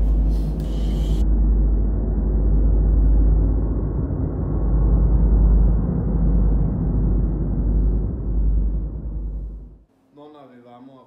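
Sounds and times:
loud muffled low rumbling: 0.0 - 9.9.

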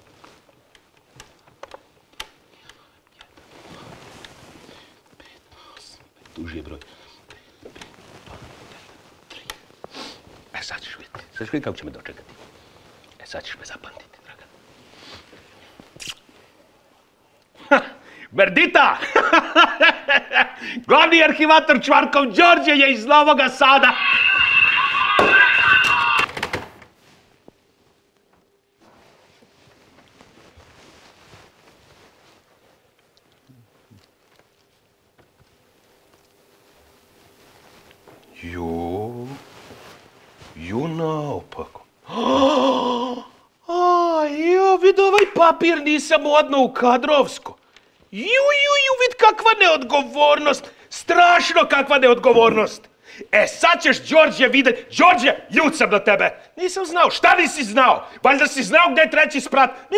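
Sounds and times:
distorted shouting from phone: 23.4 - 26.6.

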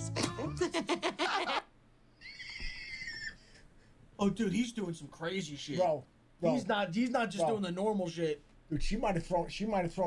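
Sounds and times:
laughter: 0.5 - 1.7
high-pitched vocal squeal: 2.2 - 3.4.

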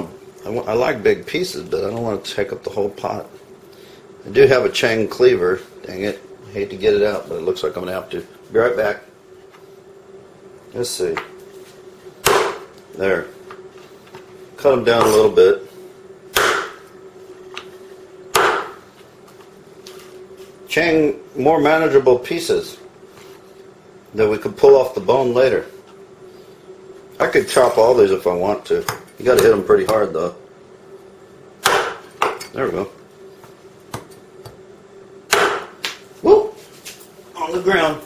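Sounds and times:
cleaver chopping on wooden board: 12.2 - 12.6, 16.4 - 16.8, 18.3 - 18.8, 31.6 - 32.4, 35.3 - 35.7.

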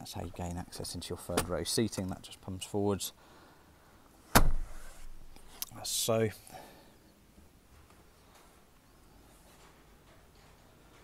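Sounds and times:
car seat clunk: 4.3 - 5.0.

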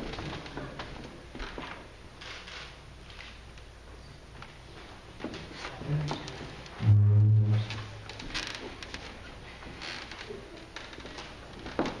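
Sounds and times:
loud low steady hum: 6.8 - 8.2.

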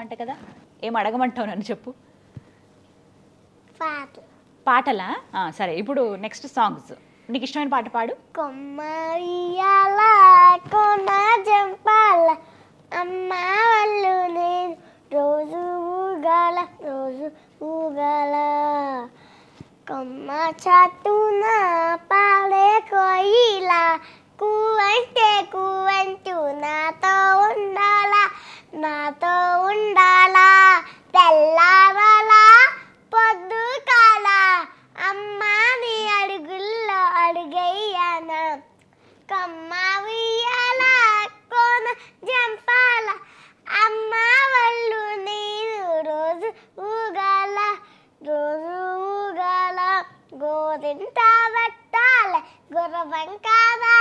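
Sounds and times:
girl singing unaccompanied: 3.7 - 4.3, 6.2 - 54.0.

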